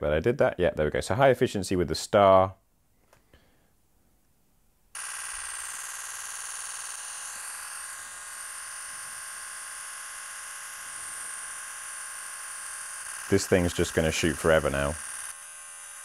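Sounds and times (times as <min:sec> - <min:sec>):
camera shutter rapid burst: 0:05.0 - 0:16.0.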